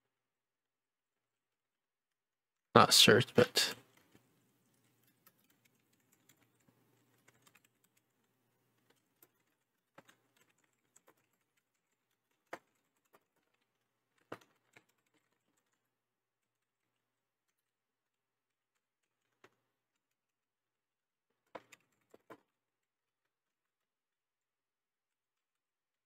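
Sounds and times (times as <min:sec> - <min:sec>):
computer keyboard typing: 0:03.8 - 0:20.2, 0:21.4 - 0:22.6.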